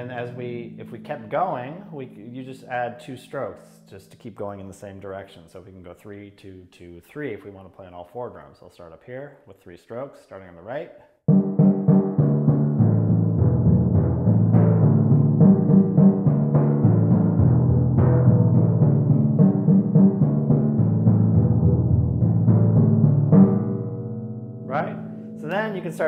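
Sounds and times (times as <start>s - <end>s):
timpani played with mallets: 0.0s - 4.0s, 11.3s - 24.0s.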